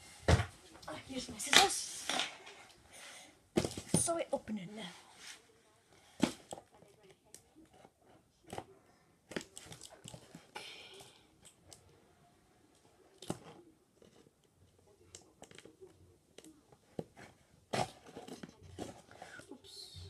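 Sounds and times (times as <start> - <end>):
box handling clicks and knocks: 3.6 - 4.2.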